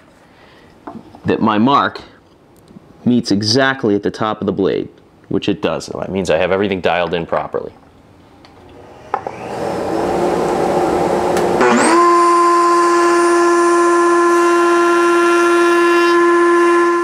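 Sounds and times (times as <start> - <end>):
router motor whine: 8.8 - 17.0.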